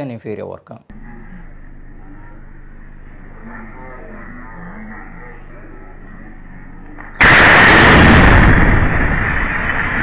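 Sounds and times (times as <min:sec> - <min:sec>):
loud explosion with rumble: 0:07.2 - 0:10.0.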